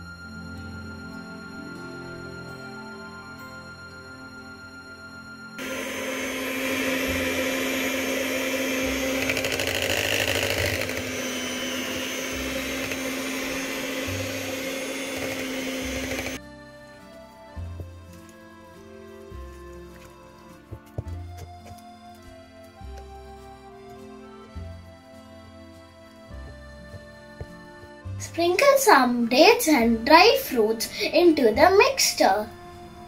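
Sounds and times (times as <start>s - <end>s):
electric hand mixer motor hum: 5.6s - 16.4s.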